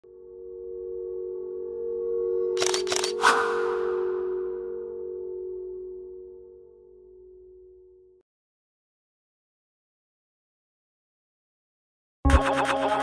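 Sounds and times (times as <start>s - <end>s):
synth drone: 0.1s - 8.2s, 12.3s - 13.0s
camera shutter clicks: 2.6s - 3.4s.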